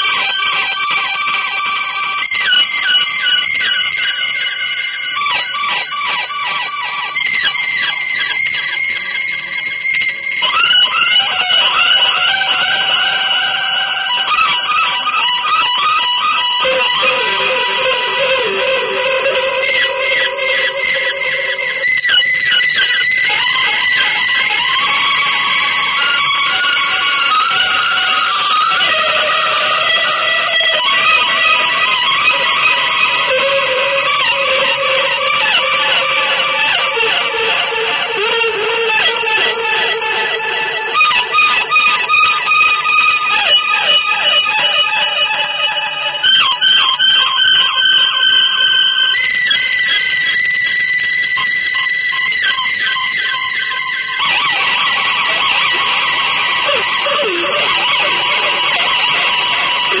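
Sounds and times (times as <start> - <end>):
avant-garde electric guitar music: 0.0 - 60.0.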